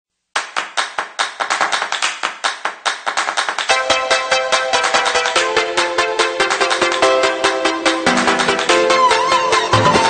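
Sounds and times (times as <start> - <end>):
clap-like percussion hits: 0.3 - 10.0.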